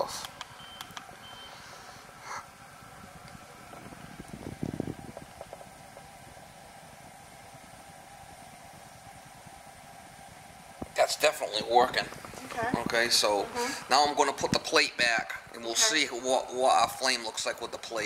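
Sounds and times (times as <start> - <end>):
gas fireplace humming: 0.0 - 18.0
remote control beep: 0.6 - 1.6.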